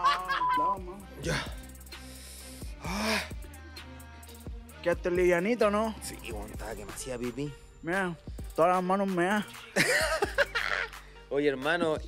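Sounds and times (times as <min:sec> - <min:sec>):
quiet background music: 0:00.0 - 0:12.0
breathy exhalations: 0:01.2 - 0:03.4.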